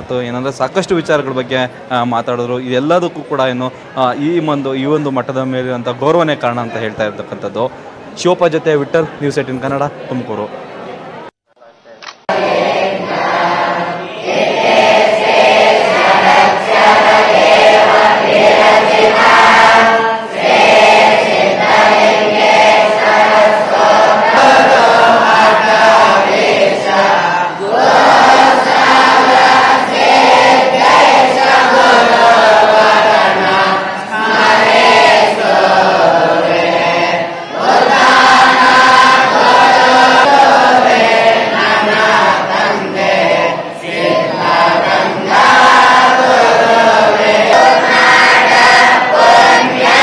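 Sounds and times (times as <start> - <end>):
young voices chanting in unison: 12.3 - 50.0.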